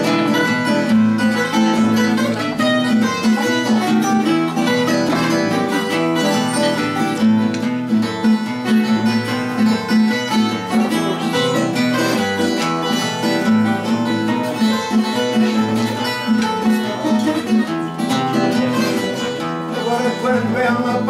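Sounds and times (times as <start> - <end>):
plucked guitars playing: 0.0 - 21.0.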